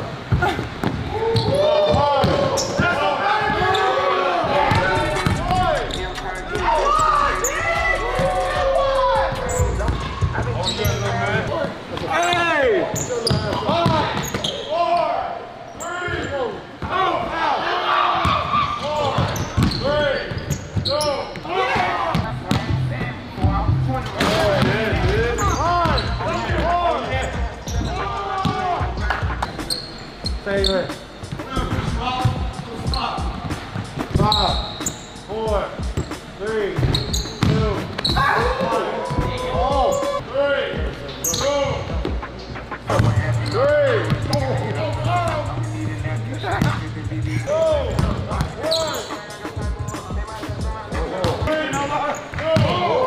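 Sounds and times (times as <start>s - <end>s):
people's voices: 0.0s - 14.8s, 20.9s - 53.0s
basketball bouncing on hardwood floor: 36.8s - 37.6s.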